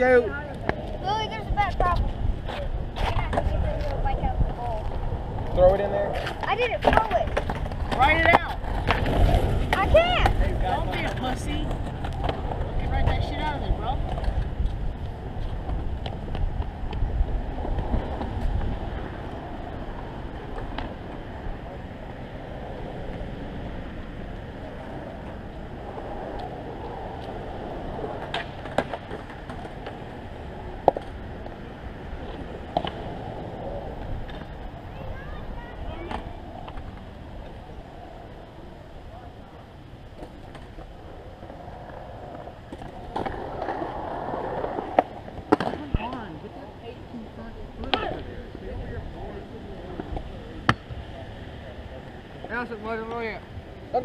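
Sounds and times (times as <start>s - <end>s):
skateboard wheels rolling on concrete: 0.0s - 54.0s
skateboard clacking on concrete: 0.4s - 19.7s, 24.4s - 31.6s, 40.1s - 46.5s, 47.8s - 48.3s.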